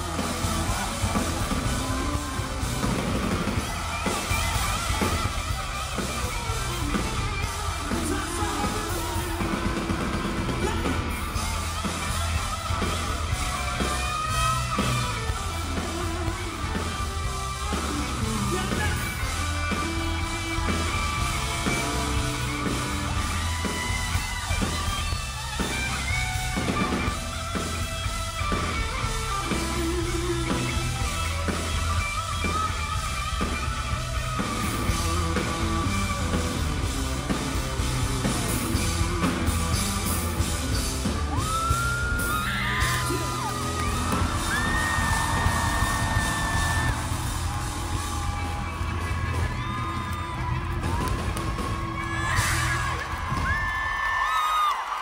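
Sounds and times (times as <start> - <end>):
live rock band: 0.0 - 55.0.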